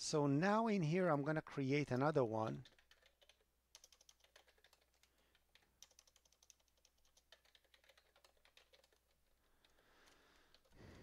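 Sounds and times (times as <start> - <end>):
computer keyboard typing: 2.5 - 11.0.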